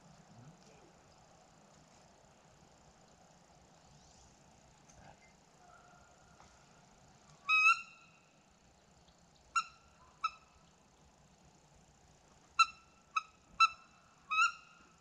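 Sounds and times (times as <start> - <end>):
bird high calls: 7.4 - 11.1, 12.6 - 15.0.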